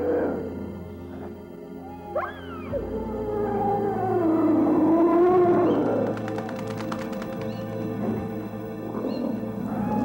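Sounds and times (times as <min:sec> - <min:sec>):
dark background music: 0:00.0 - 0:10.0
eerie howl-like wail: 0:01.8 - 0:06.4, 0:09.5 - 0:10.0.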